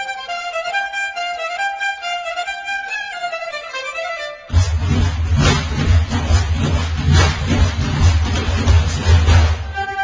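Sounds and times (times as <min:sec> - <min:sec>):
folk ensemble music: 0:00.0 - 0:05.3
heavy low drumming: 0:04.5 - 0:09.8
sharp hand-drum strokes: 0:04.5 - 0:09.8.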